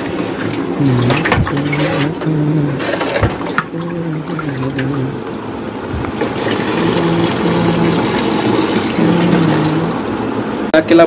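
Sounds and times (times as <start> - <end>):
liquid sloshing and splashing: 0.0 - 10.3.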